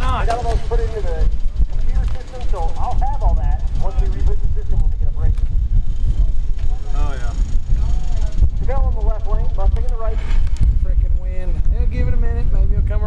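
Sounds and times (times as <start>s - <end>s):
people talking indistinctly: 0.0s - 13.0s
wind buffeting microphone: 0.0s - 13.0s.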